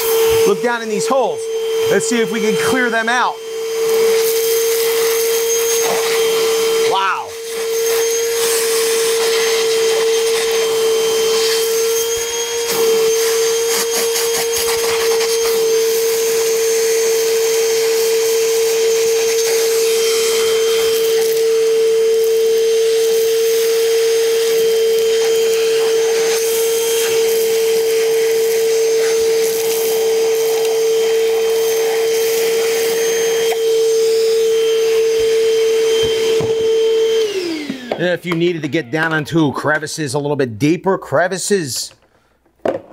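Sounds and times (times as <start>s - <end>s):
wet dry vacuum whining: 0.0s - 40.4s.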